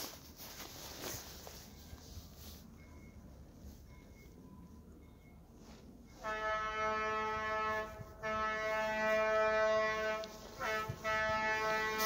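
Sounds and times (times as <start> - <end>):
rail car horn blasts: 6.1 - 12.0.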